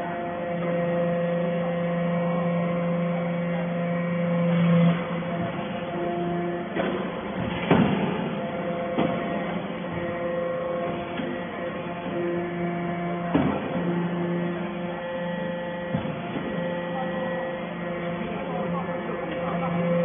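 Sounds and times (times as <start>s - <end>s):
hydraulic press hum: 0.0s - 20.0s
sharp knocks: 6.8s - 10.1s.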